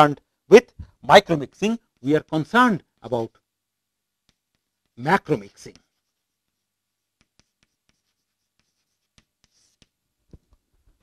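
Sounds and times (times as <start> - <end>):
chalk tapping on a blackboard: 4.2 - 5.0, 5.6 - 10.5
chalk scraping: 4.3 - 10.0.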